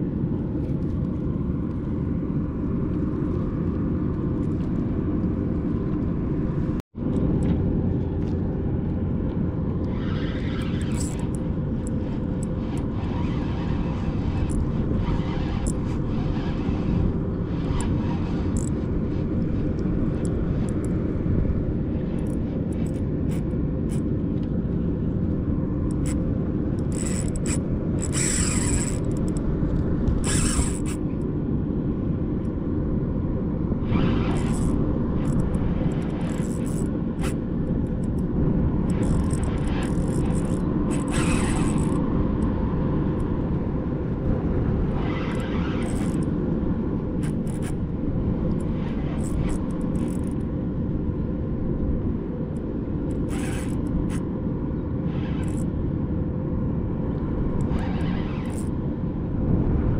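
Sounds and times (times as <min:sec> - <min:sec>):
wind buffeting microphone: 0:00.0 - 0:59.9
choppy water: 0:24.7 - 0:31.2.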